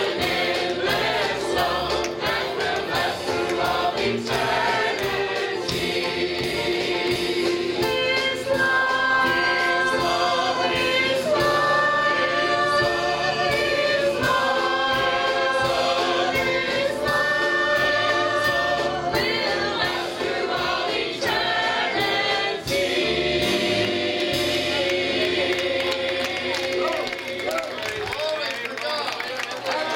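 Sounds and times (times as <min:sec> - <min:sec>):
choir singing gospel song: 0:00.0 - 0:28.0.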